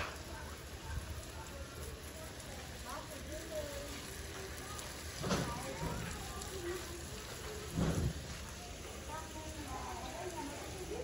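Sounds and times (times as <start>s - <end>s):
water spraying from hose nozzle: 0.0s - 11.0s.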